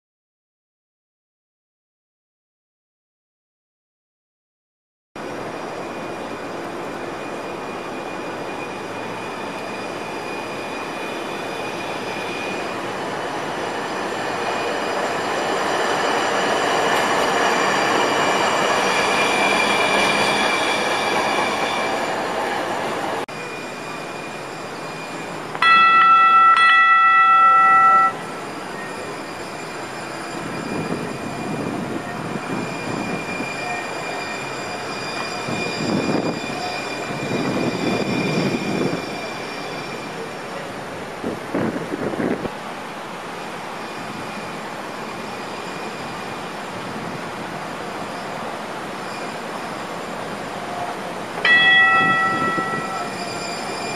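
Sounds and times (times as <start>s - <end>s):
tram rolling on street track: 5.2s - 53.9s
high squealing tones: 7.0s - 40.5s, 47.5s - 53.9s
tram horn: 25.6s - 28.4s.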